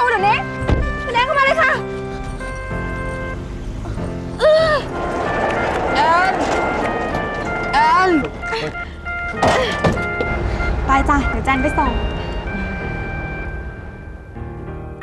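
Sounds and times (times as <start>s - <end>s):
dramatic background music: 0.0s - 15.0s
small car driving away: 2.6s - 15.0s.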